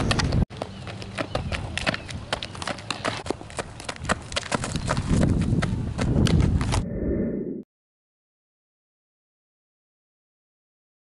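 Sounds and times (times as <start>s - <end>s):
wind rumbling on microphone: 3.9s - 7.6s.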